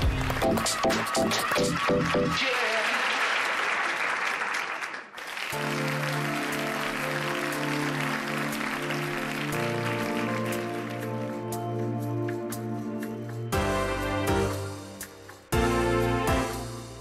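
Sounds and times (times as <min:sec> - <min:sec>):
studio audience applause: 0:00.0 - 0:11.9
soft instrumental music: 0:05.6 - 0:17.0.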